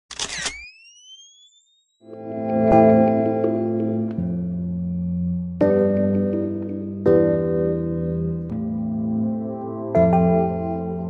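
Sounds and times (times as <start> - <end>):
camera shutter burst: 0.1 - 1.2
thin rising whine: 0.3 - 2.0.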